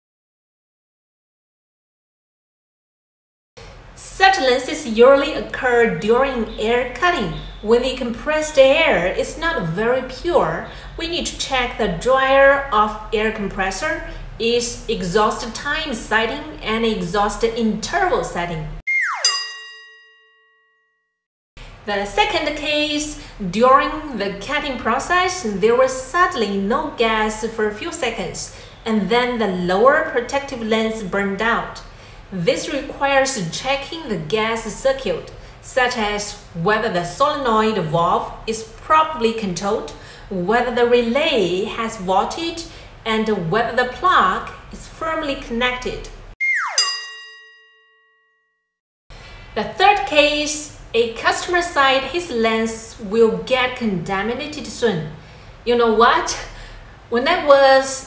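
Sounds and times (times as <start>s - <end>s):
bell-like ding: 18.9s - 21.2s, 46.4s - 48.8s.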